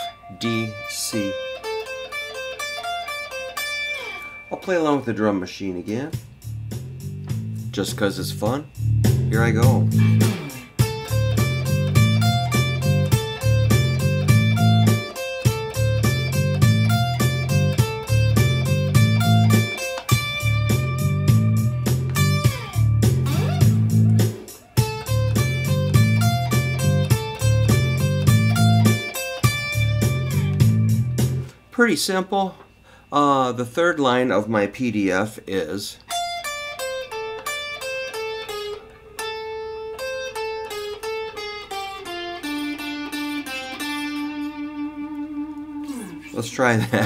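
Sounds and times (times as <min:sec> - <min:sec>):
electric guitar playing scale: 0:00.0 - 0:31.7, 0:35.4 - 0:47.0
drum machine beat: 0:06.1 - 0:31.5.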